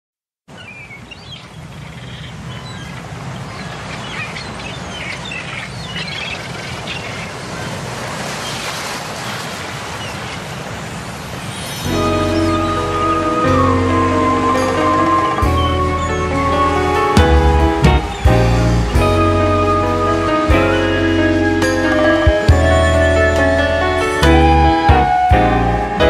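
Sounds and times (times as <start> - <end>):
birds chirping: 0.5 - 26.0
outdoor ambience: 0.5 - 26.0
music with sustained chords: 11.8 - 26.0.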